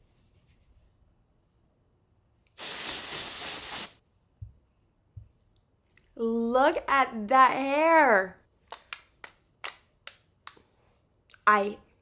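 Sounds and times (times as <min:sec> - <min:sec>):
aerosol spray hissing: 0:02.6 - 0:04.0.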